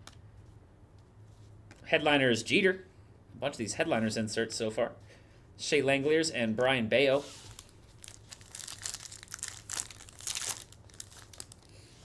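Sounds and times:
wrapper torn and crinkled: 7.5 - 11.8.

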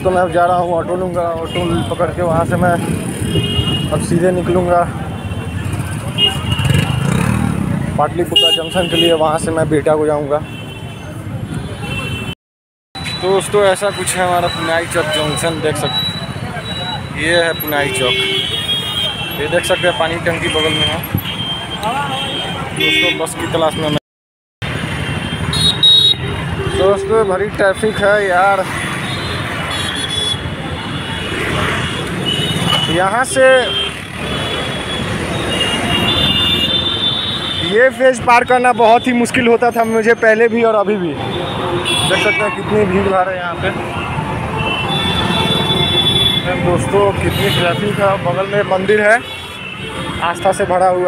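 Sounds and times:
rumble of passing vehicles: 0.0 - 12.3, 13.0 - 24.0, 24.6 - 51.0
heavy road traffic: 0.0 - 24.0, 24.6 - 51.0.

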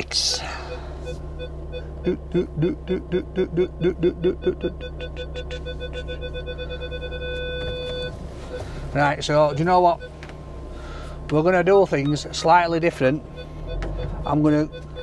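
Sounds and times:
engine idling: 0.0 - 15.0
parking sensor beeping: 0.0 - 15.0
man vocalising short notes: 1.9 - 6.1.

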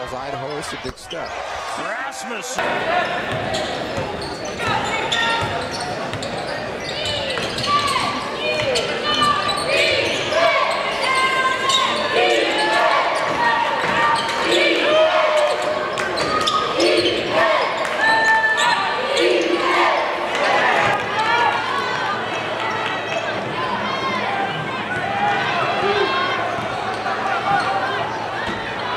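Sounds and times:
crowd and bench voices: 0.0 - 28.9
sneaker squeaks: 3.2 - 19.6.

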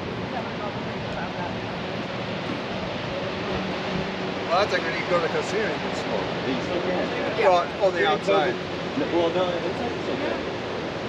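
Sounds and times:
ocean surf breaking: 0.0 - 11.0.

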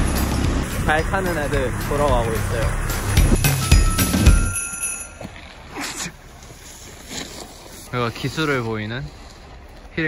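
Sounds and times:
bright bell-like ringing: 3.2 - 5.3.

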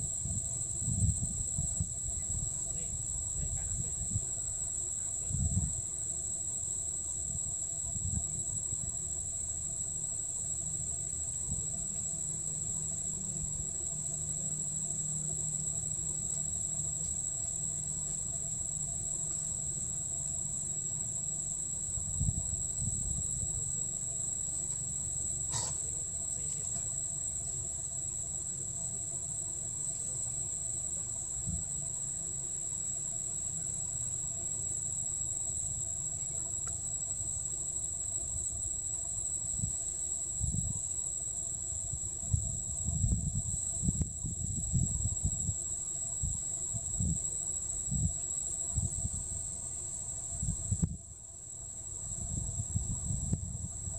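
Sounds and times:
high-pitched insect drone: 0.0 - 53.9.

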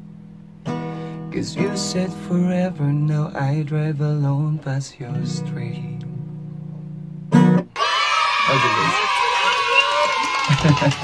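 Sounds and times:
acoustic guitar strumming: 0.0 - 7.8
excited high-pitched squealing: 7.8 - 11.0.

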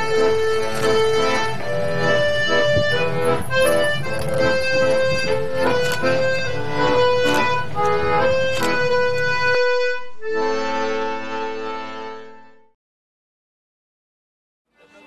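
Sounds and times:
accordion music: 0.0 - 12.8.

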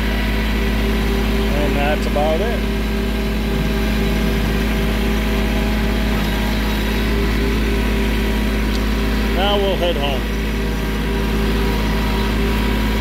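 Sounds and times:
tractor engine droning: 0.0 - 13.0.

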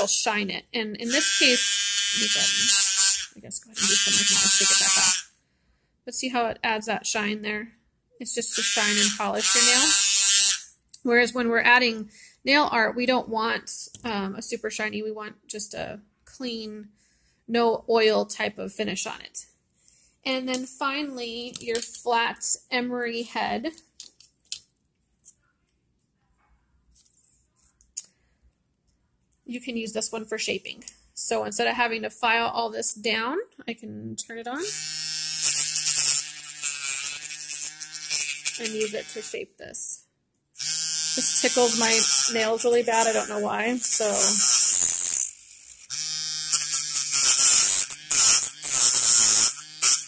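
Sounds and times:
nail drill grinding: 1.0 - 5.3, 8.5 - 10.7, 34.7 - 39.4, 40.6 - 50.0
nail drill motor hum: 1.1 - 5.3, 8.6 - 10.7, 34.7 - 39.4, 40.6 - 50.0.

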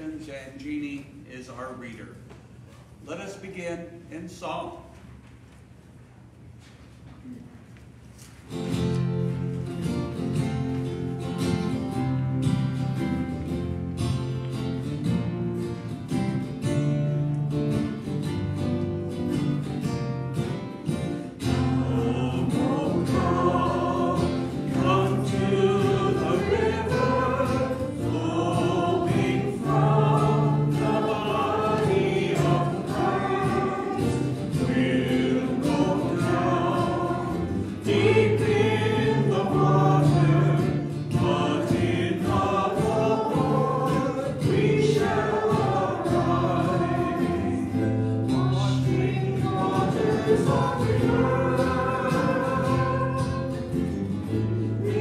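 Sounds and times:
strummed acoustic guitar: 8.5 - 55.0
voices singing a hymn: 20.8 - 55.0.

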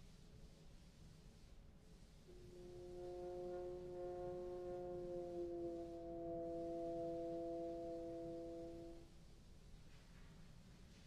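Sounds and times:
bass trombone long low note: 2.3 - 9.0.

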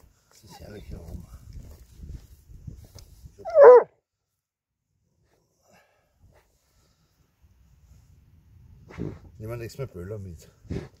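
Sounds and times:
dog barking: 3.4 - 3.9.

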